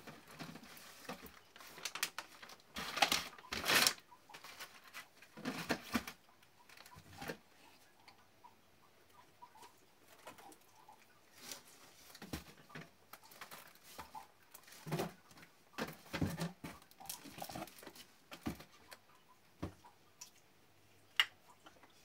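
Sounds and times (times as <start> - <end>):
plastic wrappers rustling: 0.0 - 7.4, 11.3 - 18.8.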